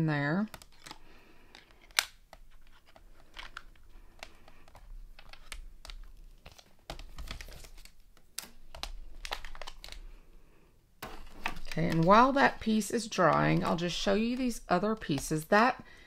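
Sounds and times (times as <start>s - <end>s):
plastic and card packaging rustling: 0.4s - 10.4s, 11.0s - 15.9s.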